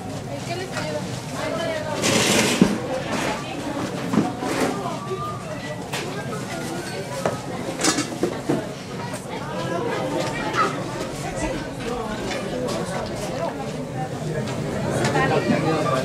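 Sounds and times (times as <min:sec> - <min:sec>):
voices chattering: 0:00.0 - 0:16.0.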